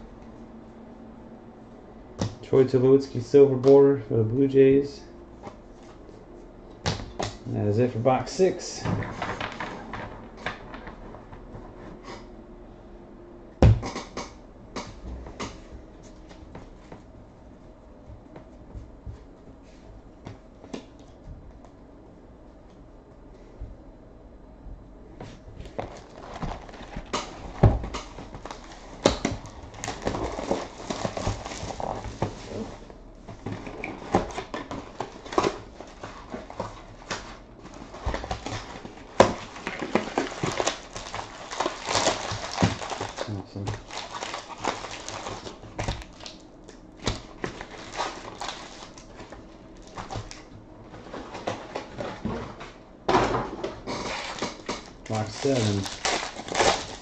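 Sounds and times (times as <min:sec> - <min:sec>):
foil packs rustling and crinkling: 0:25.6 - 0:46.4, 0:47.0 - 0:52.7, 0:53.8 - 0:57.0.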